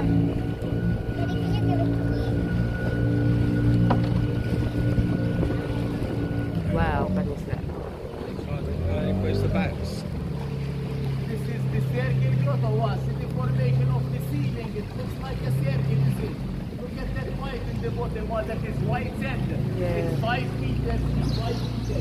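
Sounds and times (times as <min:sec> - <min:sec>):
boat engine humming: 0:00.0 - 0:22.0.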